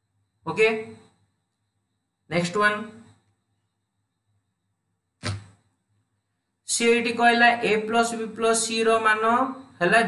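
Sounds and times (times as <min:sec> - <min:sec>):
man's short vocal syllable: 0:05.2 - 0:05.5.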